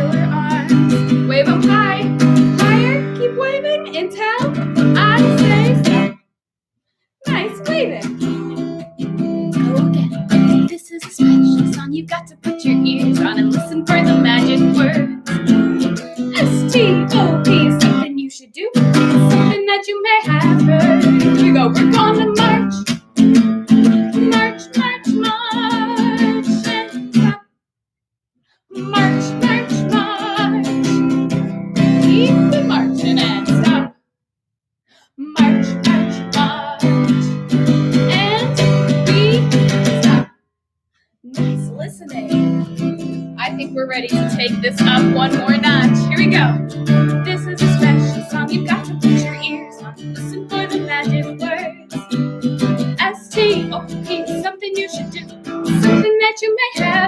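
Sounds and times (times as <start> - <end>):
acoustic guitar strumming: 0.0 - 6.2, 7.2 - 18.0, 18.8 - 19.6, 20.2 - 27.4, 28.8 - 33.9, 35.3 - 40.3, 41.3 - 57.0.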